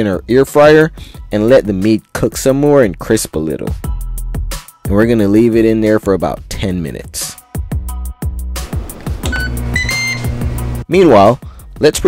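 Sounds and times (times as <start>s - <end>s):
background music with bass beat: 0.1s - 12.0s
grill control panel beeps: 9.2s - 10.8s.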